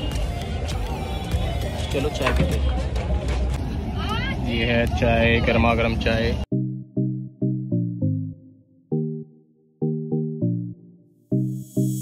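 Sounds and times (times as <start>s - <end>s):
low rumble of street traffic: 0.0s - 6.5s.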